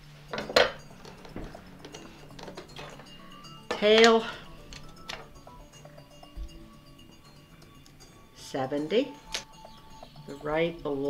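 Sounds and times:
hard object clattering: 0.3s - 5.3s.

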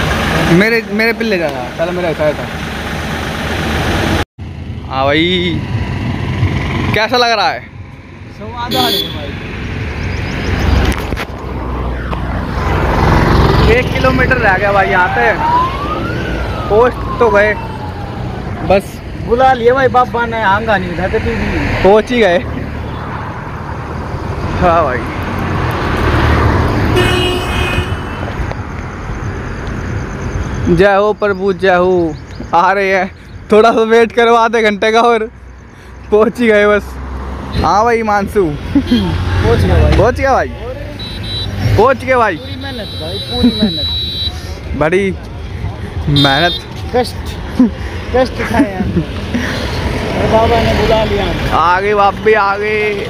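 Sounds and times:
vehicle rumbling past: 0.0s - 8.6s, 9.2s - 19.3s, 20.3s - 30.7s, 35.4s - 42.4s, 46.8s - 53.0s
roadside background noise: 0.0s - 53.0s
car horn: 8.7s - 9.4s, 26.8s - 28.5s, 40.9s - 44.6s, 46.1s - 46.9s.

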